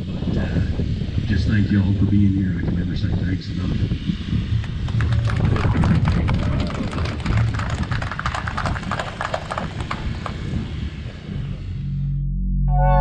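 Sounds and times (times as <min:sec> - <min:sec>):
low rumble: 0:00.0 - 0:13.0
crowd applauding: 0:04.6 - 0:10.5.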